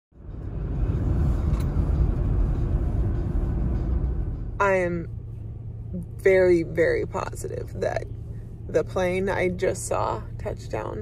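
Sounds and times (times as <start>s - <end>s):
car interior road noise: 0.1s - 11.0s.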